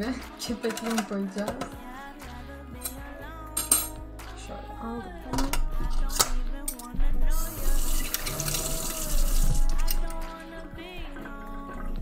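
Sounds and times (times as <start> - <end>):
background music: 0.0 - 12.0
kitchen tap running: 7.3 - 10.2.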